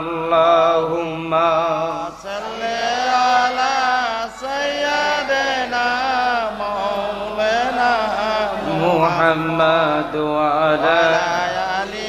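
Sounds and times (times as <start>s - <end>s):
boy singing devotional song: 0.0s - 12.0s.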